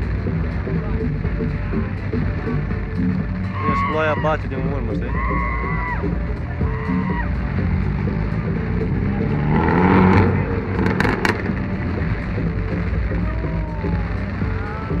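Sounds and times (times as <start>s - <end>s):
car engine revving: 0.0s - 15.0s.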